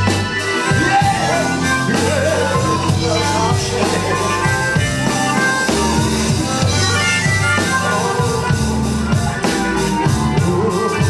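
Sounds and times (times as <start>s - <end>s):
blues-rock band playing: 0.0s - 11.0s
harmonica lead: 0.0s - 11.0s.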